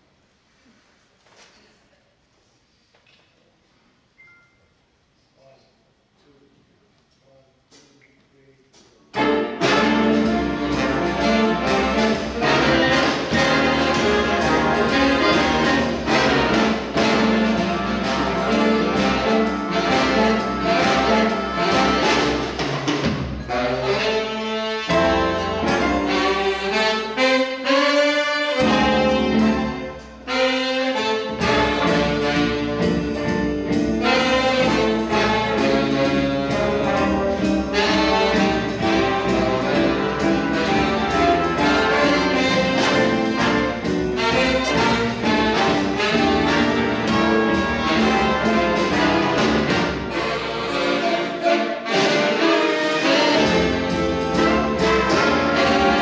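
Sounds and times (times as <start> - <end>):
jazz big band: 9.0 - 56.0.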